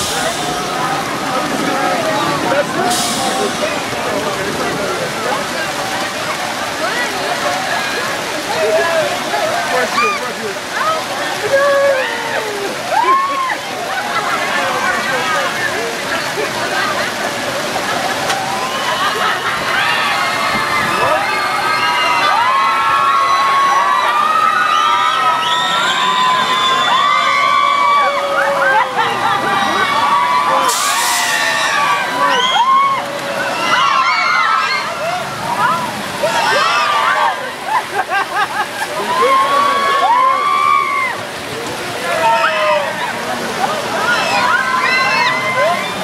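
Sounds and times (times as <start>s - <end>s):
crowd screaming: 0.0s - 46.0s
water fountains splashing: 0.0s - 46.0s.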